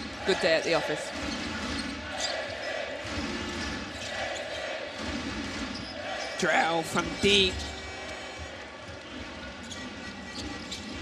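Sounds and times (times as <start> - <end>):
arena crowd noise: 0.0 - 11.0
ball bouncing on hardwood court: 1.1 - 2.3.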